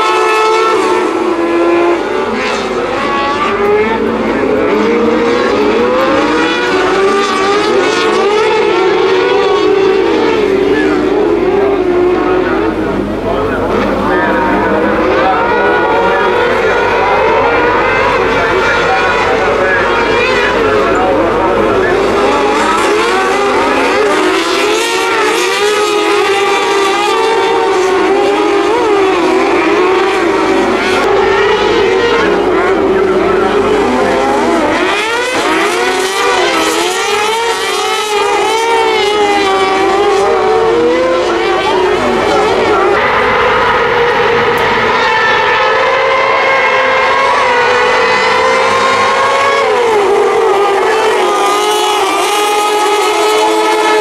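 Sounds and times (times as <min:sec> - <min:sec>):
racing buggy engines high-revving: 0:00.0 - 0:54.0.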